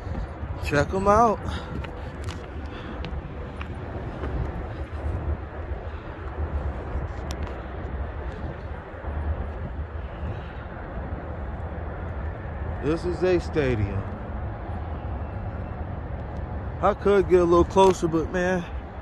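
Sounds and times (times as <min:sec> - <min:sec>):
faint distant city sound: 0:00.0 - 0:19.0.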